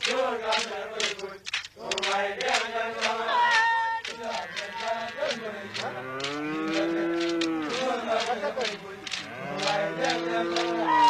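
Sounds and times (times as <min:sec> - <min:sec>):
sharp rhythmic knocks: 0:00.0 - 0:11.0.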